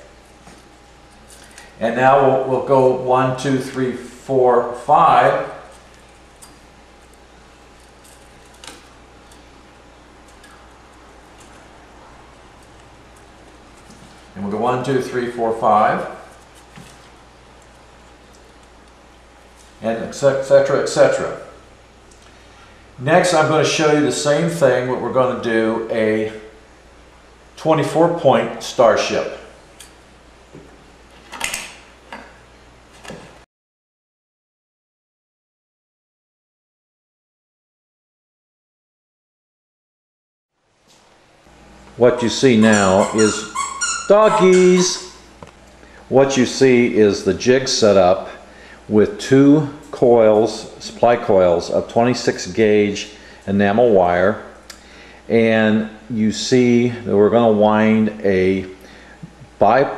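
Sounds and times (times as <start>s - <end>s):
steady low hum: 0.0s - 33.5s, 40.6s - 59.9s
wire winding ticks and rubs: 5.6s - 9.4s.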